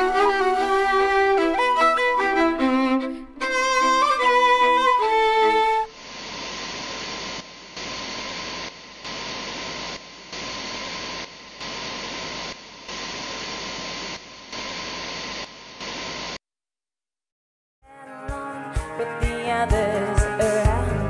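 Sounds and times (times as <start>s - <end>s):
television static hiss: 3.7s - 16.4s.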